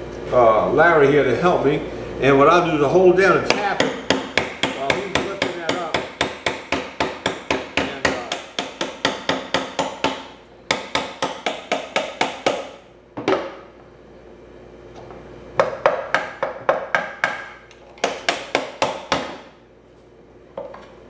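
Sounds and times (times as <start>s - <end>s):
hammer tapping on metal shaft: 3.4s - 12.7s, 15.6s - 19.4s.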